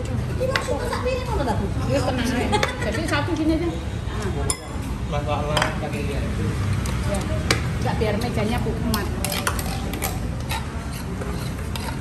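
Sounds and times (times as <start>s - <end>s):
background talk: 0.0s - 12.0s
cutlery clinking on plastic plates: 6.8s - 12.0s.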